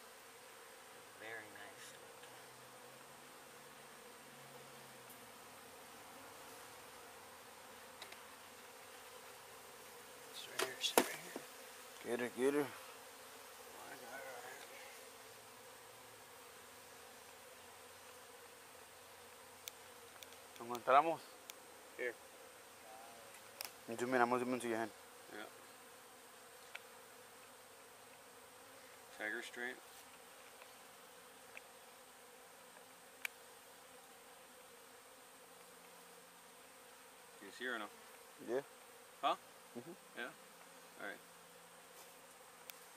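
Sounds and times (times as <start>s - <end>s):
honeybees buzzing: 0.0s - 42.9s.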